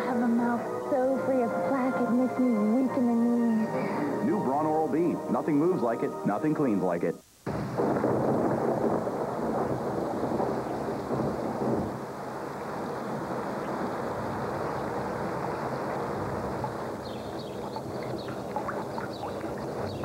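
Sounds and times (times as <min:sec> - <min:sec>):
steady rainfall: 0:00.0 - 0:20.0
thunder rumbling: 0:00.0 - 0:20.0
sharp drips: 0:15.6 - 0:20.0.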